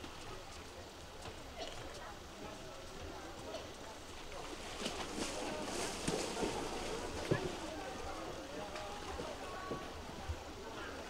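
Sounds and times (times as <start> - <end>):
chatter of voices: 0.0 - 11.0
water sloshing: 4.1 - 11.0.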